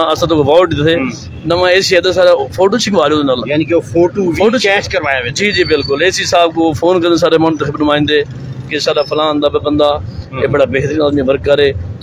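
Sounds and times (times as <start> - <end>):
man speaking into a microphone: 0.0 - 12.0
street traffic: 0.0 - 12.0.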